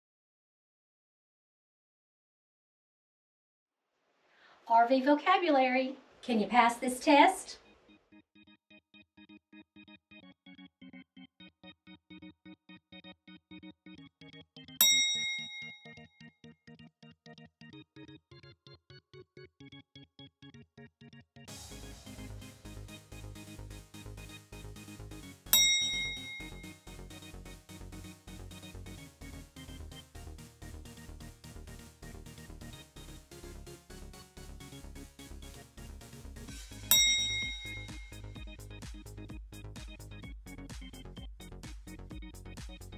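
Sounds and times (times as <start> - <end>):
bright ding chime: 14.8 - 15.9, 25.6 - 26.8, 36.9 - 38.2
light background music: 21.5 - 42.9.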